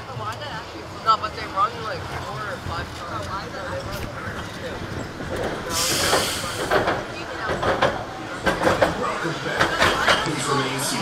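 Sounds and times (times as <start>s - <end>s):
roller coaster train rolling: 0.0s - 11.0s
voices: 0.0s - 11.0s
air hiss: 5.7s - 6.8s.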